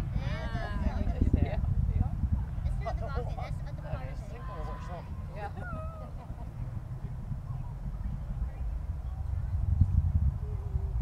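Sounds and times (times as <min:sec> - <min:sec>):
distant rocket engines rumbling: 0:00.0 - 0:11.0.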